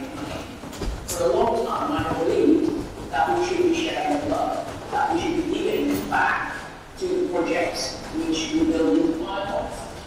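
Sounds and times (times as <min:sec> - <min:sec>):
man talking over microphone: 0:01.1 - 0:10.0.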